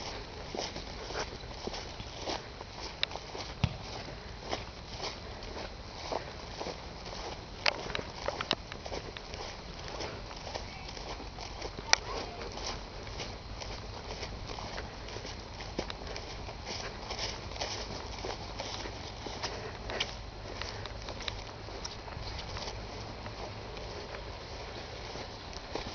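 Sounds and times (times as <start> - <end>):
footsteps through grass: 0.0 - 25.9.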